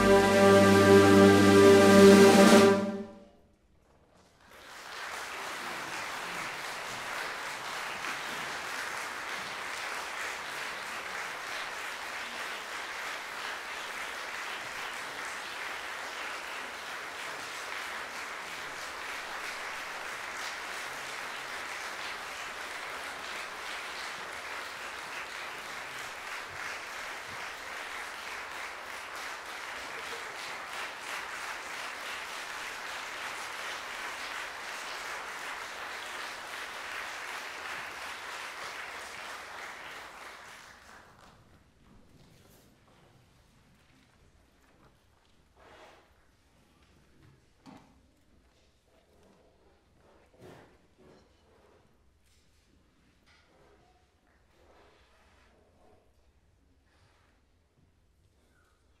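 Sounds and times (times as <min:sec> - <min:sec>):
audience applauding: 0:00.0 - 0:03.1, 0:04.6 - 0:41.2.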